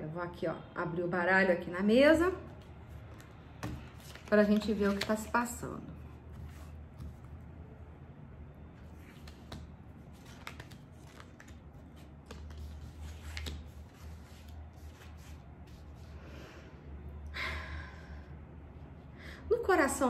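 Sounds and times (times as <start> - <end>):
card rustle: 2.9 - 5.4, 8.9 - 15.4
cards clicking and sliding: 9.0 - 14.0.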